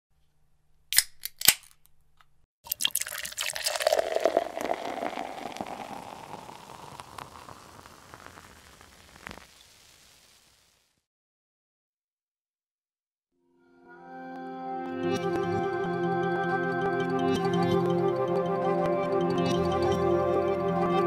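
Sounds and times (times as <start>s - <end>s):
beer pouring and fizzing: 2.6s - 10.6s.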